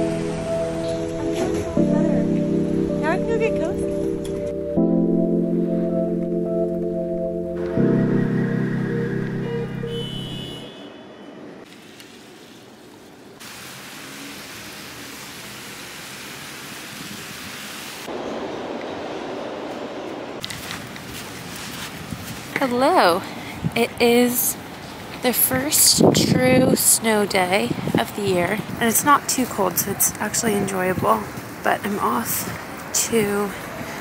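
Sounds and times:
background music with held chords: 0.0s - 10.6s
car tyres on wet road: 9.9s - 23.0s.

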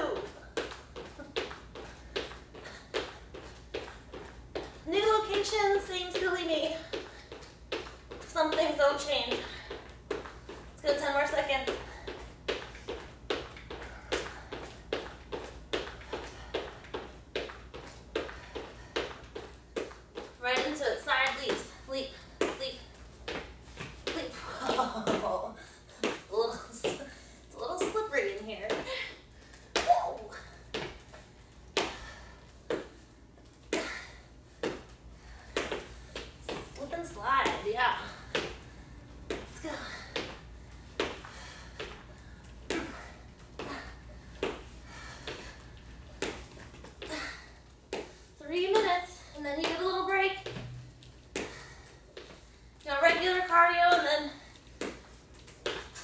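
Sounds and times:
woman's voice: 0.0s - 0.4s, 4.8s - 7.0s, 8.3s - 9.6s, 10.8s - 11.8s, 20.4s - 22.9s, 24.1s - 25.6s, 26.3s - 29.1s, 36.5s - 38.2s, 48.4s - 50.5s, 52.8s - 54.4s.

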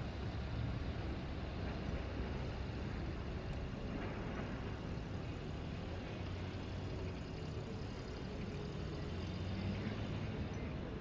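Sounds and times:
car engines running: 0.0s - 11.0s
vehicles moving along road: 0.0s - 11.0s.

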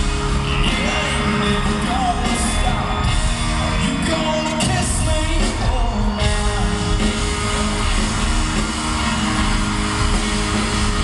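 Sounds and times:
country band playing: 0.0s - 11.0s.

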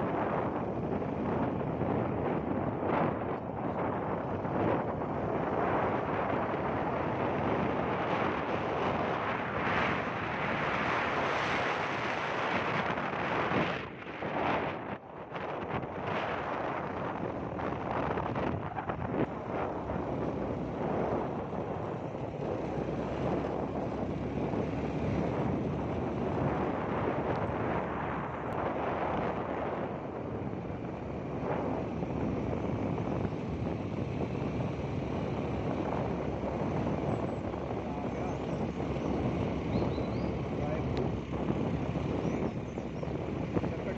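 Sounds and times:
vehicle road and engine rumble: 0.0s - 43.9s
wind buffeting microphone: 0.0s - 43.9s.

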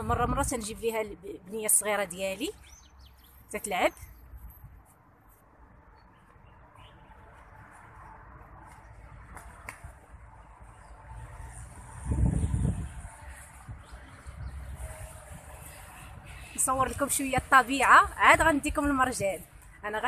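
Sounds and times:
wind buffeting microphone: 0.0s - 0.8s, 11.5s - 19.5s.

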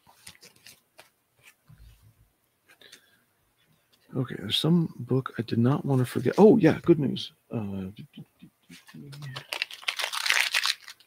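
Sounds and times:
plastic packaging crinkling: 8.8s - 11.0s.

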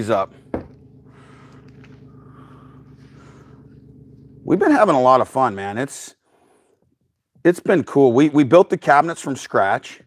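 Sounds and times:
quiet low hum: 0.0s - 9.8s.

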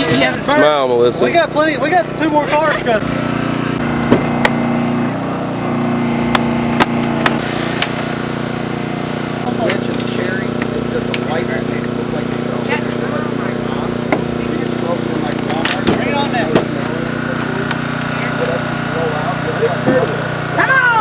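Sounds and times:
hydraulic power unit droning: 0.0s - 21.0s.

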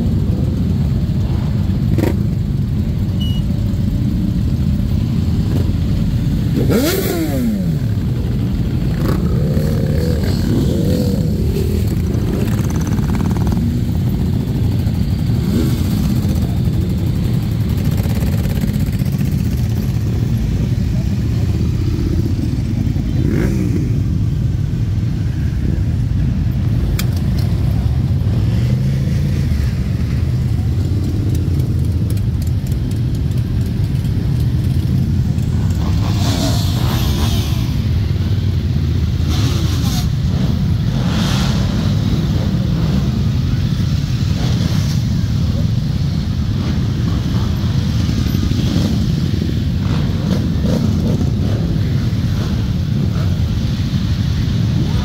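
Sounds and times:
motorcycles rumbling past: 0.0s - 2.7s, 3.9s - 26.1s, 26.7s - 38.4s, 39.1s - 55.0s
motorcycle engine revving: 1.2s - 2.7s, 4.5s - 24.3s, 46.4s - 55.0s.

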